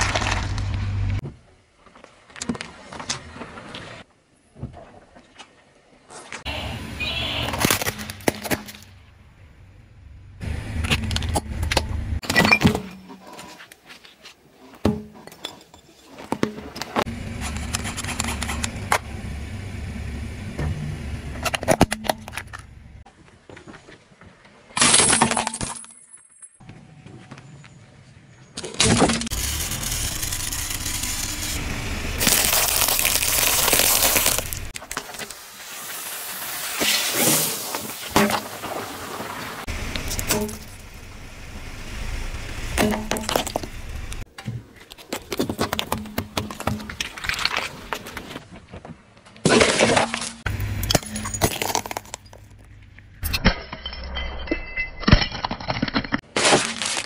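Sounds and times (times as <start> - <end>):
car rumble: 0.0 - 1.2, 6.5 - 12.2, 17.0 - 23.0, 29.3 - 34.8, 39.1 - 44.3
tyre crushing objects on asphalt: 0.0 - 1.2, 32.2 - 35.2, 56.2 - 57.0
sharp crack: 28.8 - 35.4
peanut shells cracking under tyre: 32.2 - 35.0.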